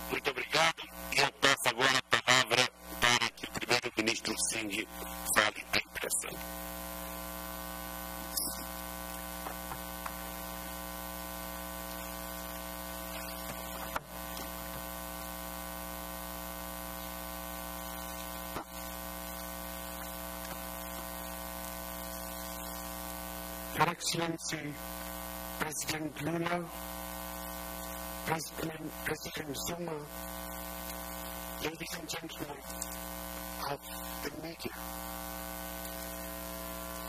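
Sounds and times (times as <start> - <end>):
electrical mains hum: 0.0 - 37.0.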